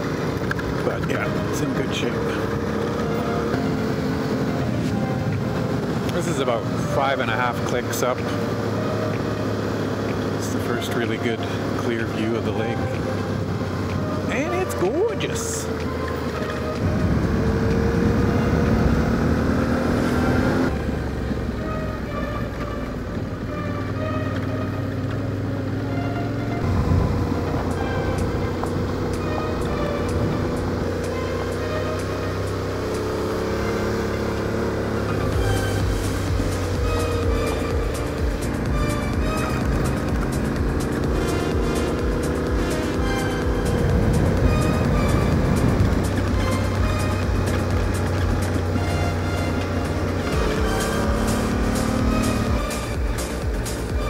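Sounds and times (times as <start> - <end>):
motorcycle engine running: 0.0 - 54.0
tyres on gravel road: 0.0 - 54.0
background music with quick beat: 35.2 - 54.0.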